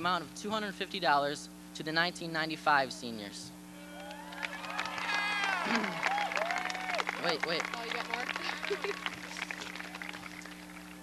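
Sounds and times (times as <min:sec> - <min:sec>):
steady low hum: 0:00.0 - 0:11.0
audience applause: 0:04.0 - 0:11.0
brief laugh: 0:05.6 - 0:06.1.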